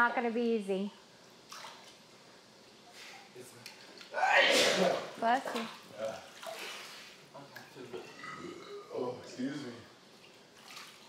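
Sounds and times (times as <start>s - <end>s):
pool water splashing: 1.4s - 2.1s, 3.6s - 8.4s, 9.4s - 11.0s.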